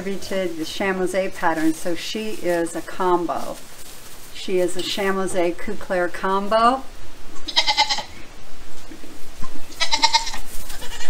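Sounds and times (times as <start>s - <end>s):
goat kid bleating: 7.4s - 8.2s, 9.7s - 11.0s.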